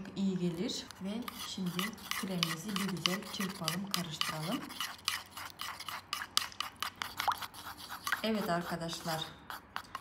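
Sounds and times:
utensil scraping a bowl: 0:00.4 - 0:10.0.

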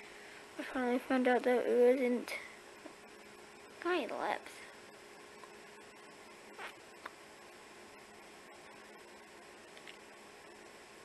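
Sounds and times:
faint hum: 0:00.0 - 0:11.0
small click: 0:09.7 - 0:10.0.

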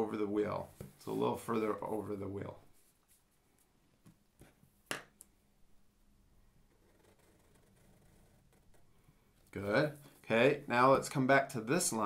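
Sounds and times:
marker drawing on paper: 0:06.7 - 0:09.0.

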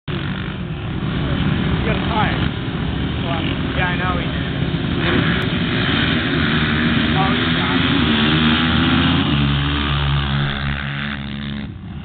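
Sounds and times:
atv engines revving high: 0:00.1 - 0:12.0.

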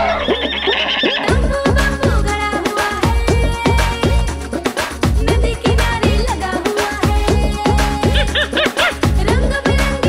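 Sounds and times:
cartoon horse whinny: 0:00.0 - 0:01.4
backing music: 0:00.0 - 0:10.0.

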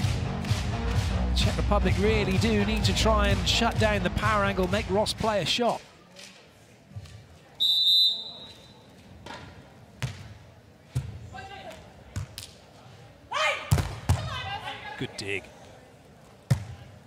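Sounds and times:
referee's whistle blast: 0:07.6 - 0:08.8
volleyball hits: 0:13.7 - 0:14.4, 0:16.5 - 0:16.8.

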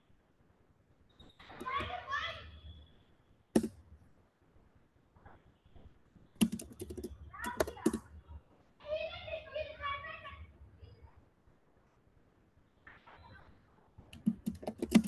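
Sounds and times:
computer keyboard typing: 0:06.4 - 0:08.1, 0:14.1 - 0:15.0
person speaking: 0:06.4 - 0:08.2.

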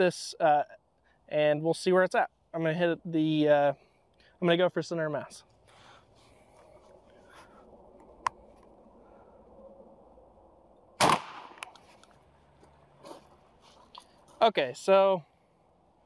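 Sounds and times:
shotgun shot with echo: 0:11.0 - 0:11.6.

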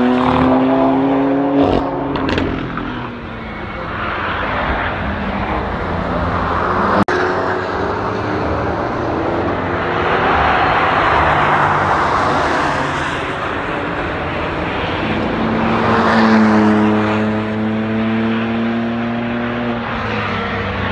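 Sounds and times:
cars racing past: 0:00.0 - 0:20.9.

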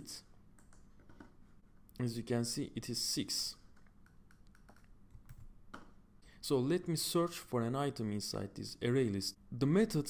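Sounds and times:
computer keyboard clicks: 0:03.8 - 0:05.9.

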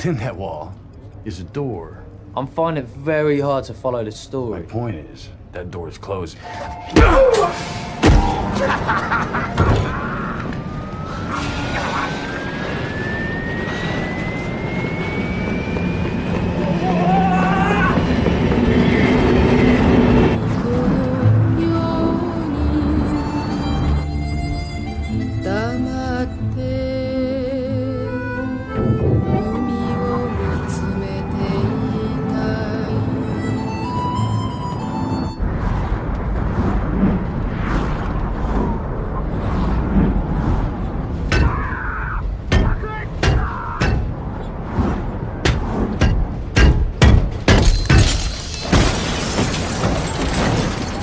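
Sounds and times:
train rumble: 0:06.1 - 0:48.0
rising electric whine: 0:07.5 - 0:41.2
faint film music: 0:20.3 - 0:35.5.

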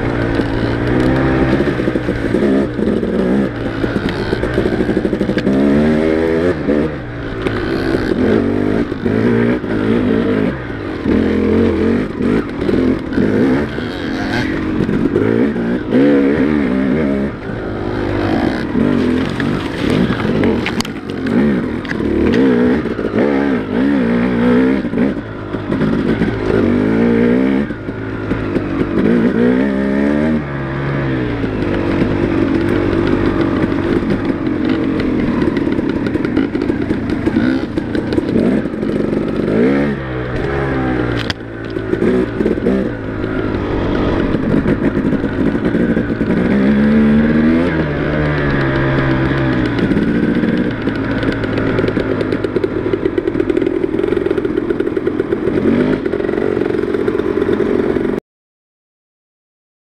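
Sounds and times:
dirt bike engine revving: 0:00.0 - 0:58.2.

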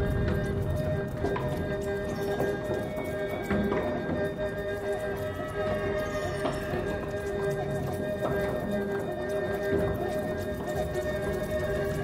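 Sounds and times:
clattering knocks and clicks: 0:00.0 - 0:12.0
droning tones: 0:00.0 - 0:12.0.

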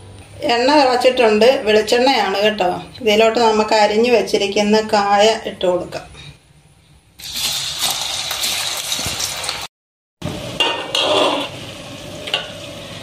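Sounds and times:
oil sizzling while deep-frying: 0:07.2 - 0:13.0.

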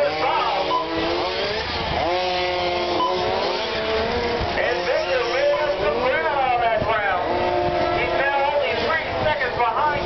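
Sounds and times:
toy car electric motors whining: 0:00.0 - 0:06.2.

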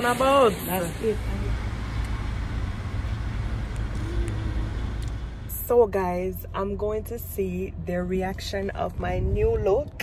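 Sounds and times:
road and engine rumble inside car: 0:00.0 - 0:10.0.

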